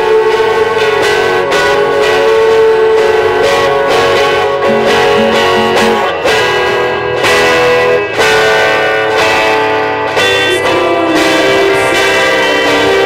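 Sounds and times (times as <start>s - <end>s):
strummed and plucked guitars: 0.0s - 13.0s
long held note: 4.6s - 6.3s.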